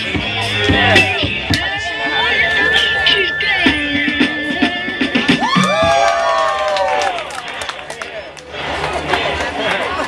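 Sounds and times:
group cheering: 0.9 - 8.2.

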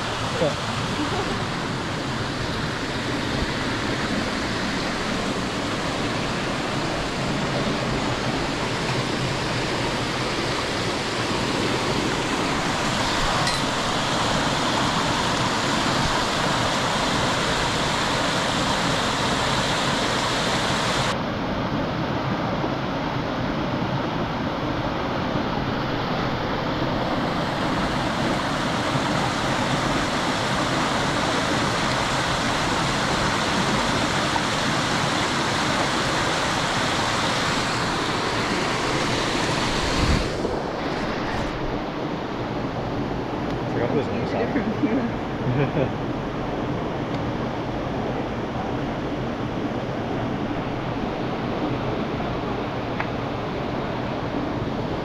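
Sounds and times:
stream rushing over cascades: 0.0 - 55.0.

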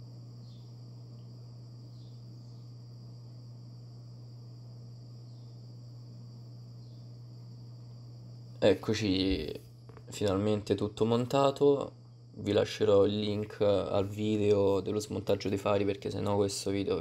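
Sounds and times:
faint high whine: 0.0 - 17.0
low electrical hum: 0.0 - 17.0.

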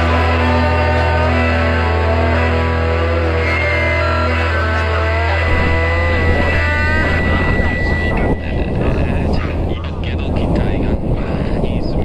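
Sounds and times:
electric motor and propeller: 0.0 - 9.4
rock song: 0.0 - 9.7
wind rushing over microphone: 2.7 - 12.0.

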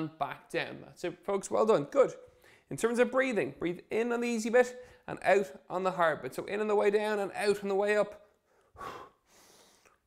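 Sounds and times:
man breathing audibly: 2.3 - 2.7, 8.4 - 10.0.

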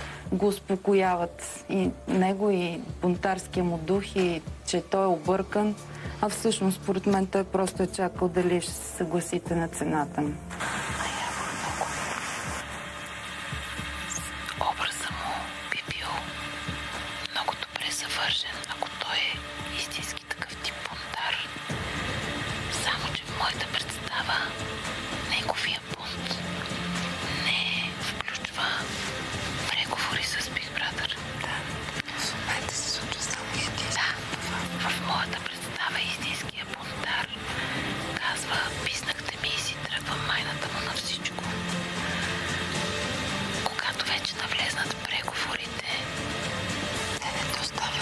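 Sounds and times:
soft background music: 0.0 - 48.0.

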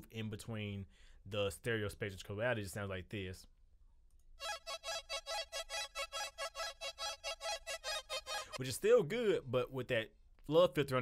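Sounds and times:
arpeggiated synth: 4.4 - 8.6.

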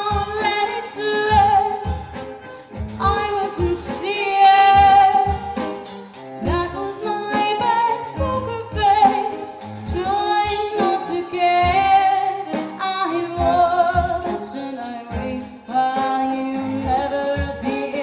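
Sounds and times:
drum hits: 0.0 - 18.0
violin melody with vibrato: 0.0 - 18.0.

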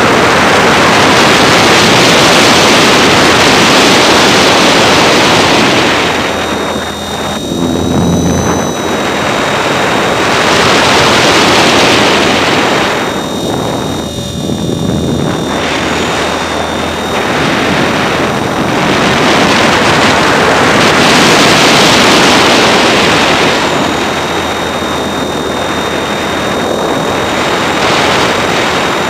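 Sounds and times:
helicopter rotor wash and wind: 0.0 - 29.0
high motor whine: 0.0 - 29.0.

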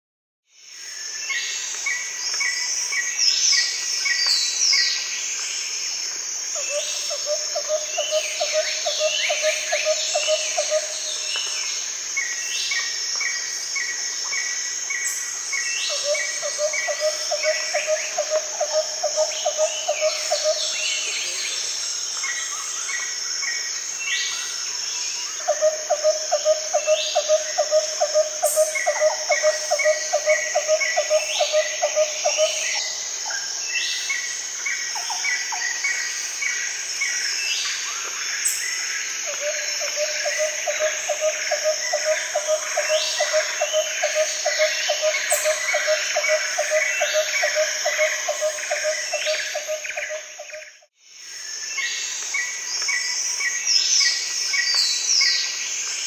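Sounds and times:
high-pitched insect drone: 0.8 - 56.0.

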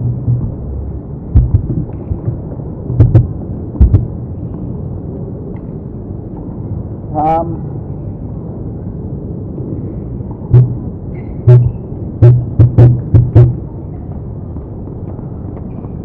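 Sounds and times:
heavy thumps: 0.0 - 0.7, 1.3 - 4.2, 10.5 - 13.6.

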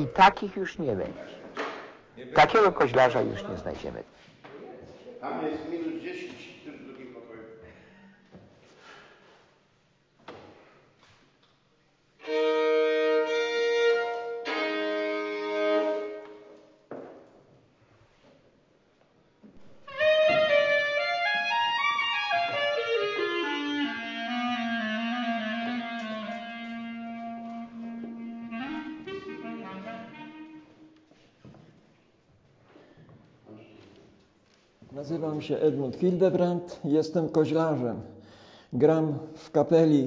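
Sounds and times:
bagpipe with sliding reedy pitch: 12.2 - 16.4, 19.9 - 30.9.

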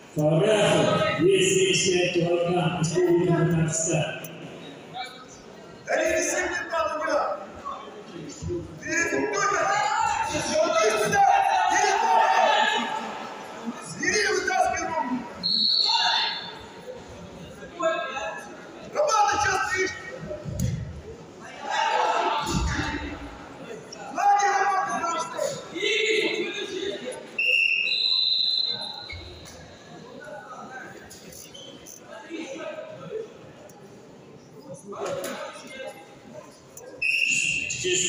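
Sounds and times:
voices in a hall: 0.0 - 38.0
referee's whistle blast: 27.4 - 29.3, 37.0 - 37.9.

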